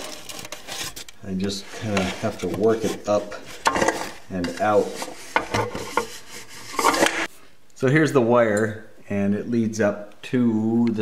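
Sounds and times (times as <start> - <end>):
rubbing and scraping: 0.0 - 7.4.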